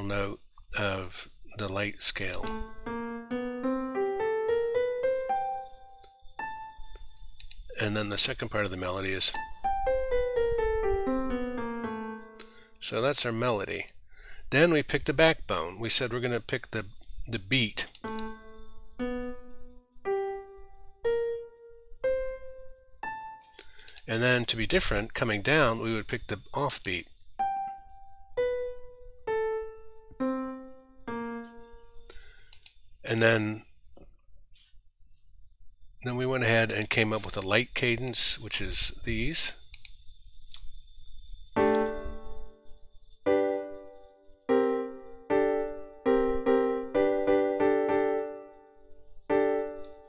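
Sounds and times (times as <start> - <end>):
piano single notes: 2.4 - 7.0, 9.3 - 12.6, 27.4 - 32.0
faint clicks: 6.9 - 7.8, 17.8 - 18.4, 21.9 - 24.1, 27.0 - 32.8, 39.6 - 42.0, 42.8 - 43.2.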